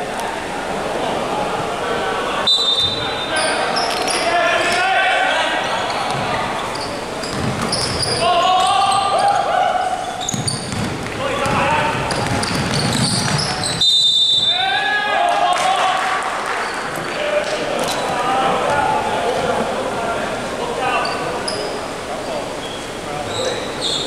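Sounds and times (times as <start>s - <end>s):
players calling and shouting: 0.0s - 24.0s
basketball bouncing: 7.2s - 8.0s, 10.2s - 13.8s.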